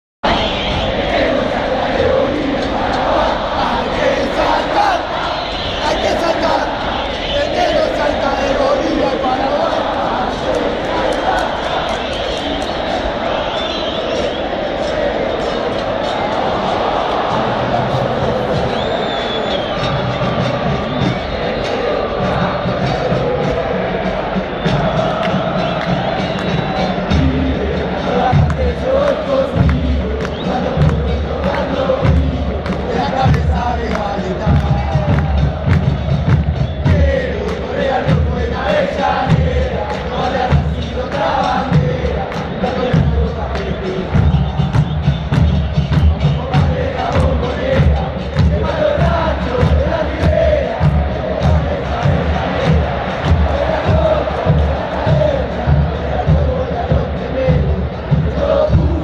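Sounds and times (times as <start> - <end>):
stadium crowd chanting: 0.2 - 59.0.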